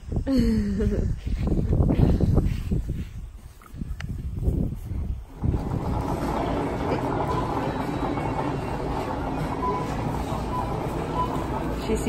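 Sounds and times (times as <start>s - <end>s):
store background hum: 5.1s - 12.0s
stroller wheels rolling on hard floor: 5.3s - 12.0s.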